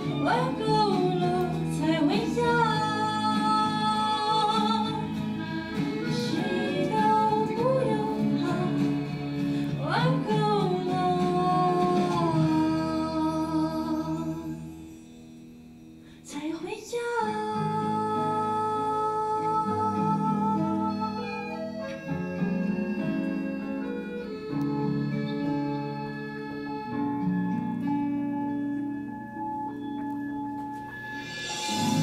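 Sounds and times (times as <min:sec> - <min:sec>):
woman singing: 0:00.0 - 0:14.7, 0:16.2 - 0:21.7
instrumental accompaniment: 0:17.6 - 0:32.0.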